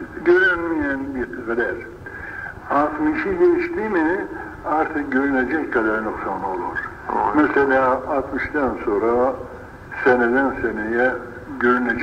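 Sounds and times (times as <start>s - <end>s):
man speaking muffled: 2.6s - 9.4s, 10.0s - 12.0s.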